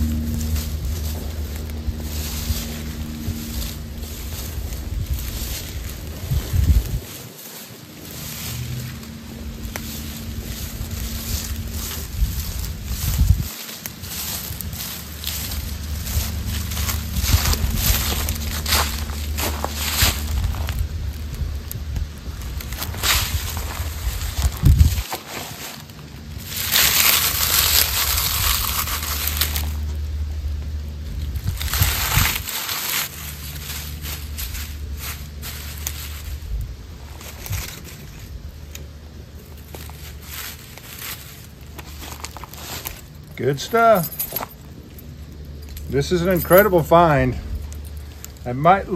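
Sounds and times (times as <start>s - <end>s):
dry leaves crumpled by hand: 0.0s - 48.9s
footsteps crunching through leaves: 0.0s - 48.9s.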